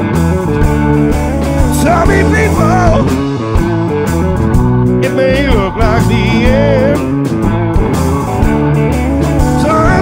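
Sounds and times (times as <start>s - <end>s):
blues band playing live: 0.0s - 10.0s
electric guitar bending notes: 0.0s - 10.0s.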